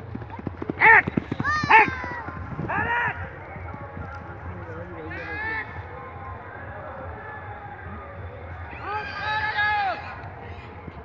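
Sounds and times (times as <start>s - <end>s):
horse hooves galloping on dirt: 0.0s - 6.5s
people shouting: 0.8s - 3.2s, 8.6s - 10.6s.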